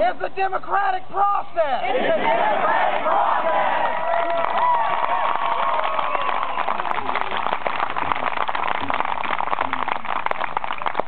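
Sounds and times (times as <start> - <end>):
crowd applauding: 2.9 - 11.0.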